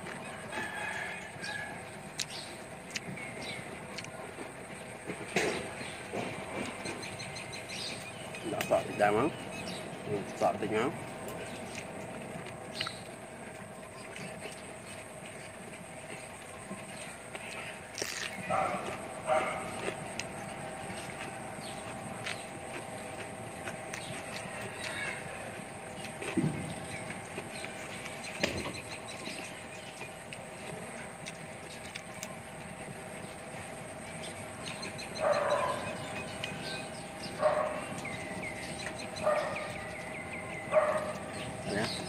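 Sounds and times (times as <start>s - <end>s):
outdoor background noise: 0.0s - 42.0s
chewing and mouth smacks: 2.1s - 4.2s, 11.2s - 33.7s.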